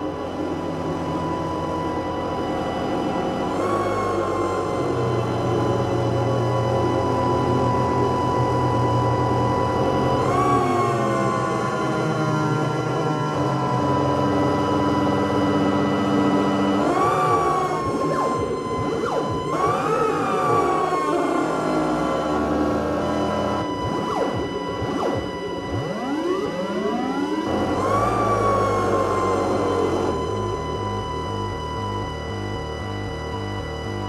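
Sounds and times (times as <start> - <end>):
electronic drone music: 0.0 - 34.0.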